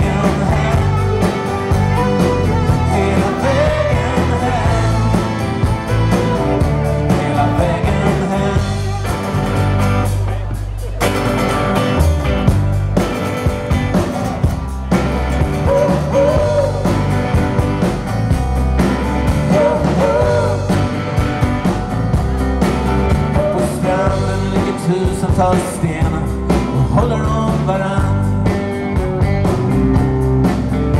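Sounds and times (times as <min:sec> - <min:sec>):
wavering lead melody line: 0:00.0 - 0:10.1
acoustic guitar: 0:00.0 - 0:30.9
bass: 0:00.0 - 0:30.9
drums: 0:00.0 - 0:30.9
electric guitar: 0:00.0 - 0:30.9.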